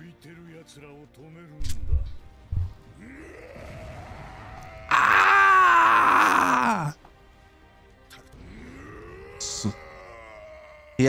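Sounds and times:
monster roaring: 3.0 - 7.0, 8.4 - 11.0.

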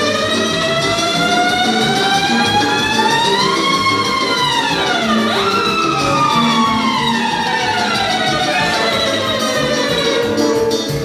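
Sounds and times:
long sliding melody note: 0.0 - 10.7
live band playing dance music: 0.0 - 11.0.

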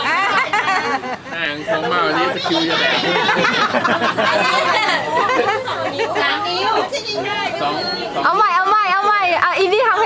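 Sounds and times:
people laughing: 0.0 - 7.0
people talking: 0.0 - 10.0.

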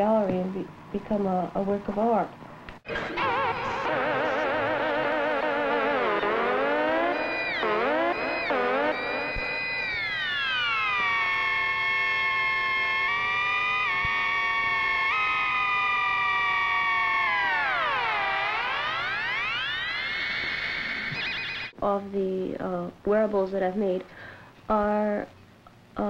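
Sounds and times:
sliding electronic tone: 2.9 - 21.8.

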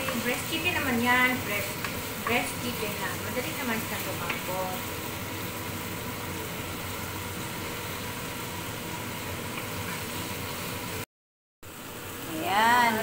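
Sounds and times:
chicken and onions sizzling in pan: 0.0 - 11.1, 11.7 - 13.0.

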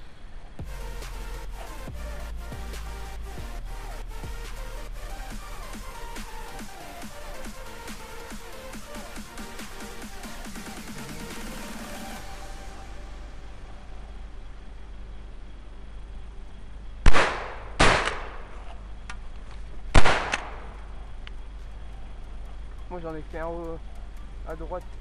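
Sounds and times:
intro music: 0.6 - 15.3
shotgun shots echoing: 17.0 - 18.7, 19.9 - 20.9.

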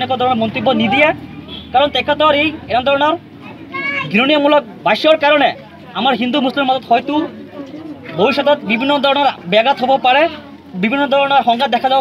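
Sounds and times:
man talking: 0.0 - 3.3, 4.0 - 12.0.

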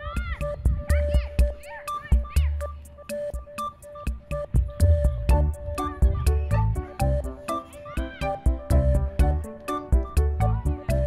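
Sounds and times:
music with heavy beat: 3.2 - 11.0.

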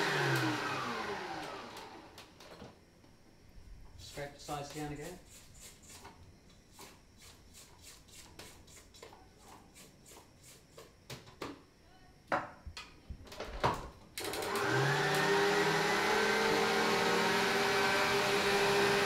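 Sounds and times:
stand mixer motor humming: 0.0 - 2.0, 14.3 - 19.0.

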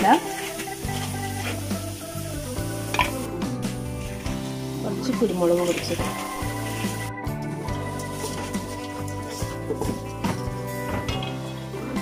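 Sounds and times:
music with sustained chords: 0.0 - 12.0.

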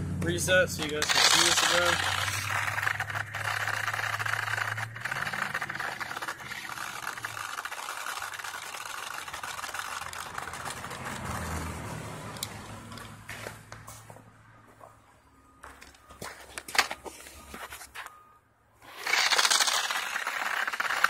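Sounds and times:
toy car motor whining: 0.8 - 11.8, 18.8 - 21.0.

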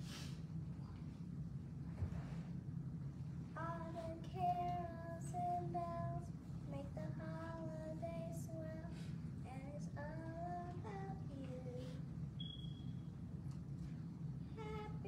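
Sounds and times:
steady low hum: 0.0 - 15.0
child singing: 3.6 - 12.0, 14.6 - 15.0.

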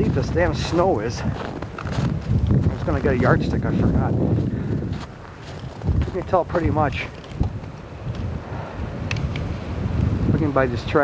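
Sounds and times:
wind buffeting microphone: 0.0 - 11.0
faint clicks: 9.0 - 9.5.

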